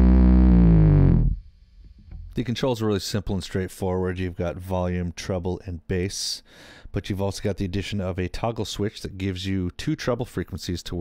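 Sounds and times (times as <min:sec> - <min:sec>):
electric bass guitar low note: 0:00.0 - 0:02.4.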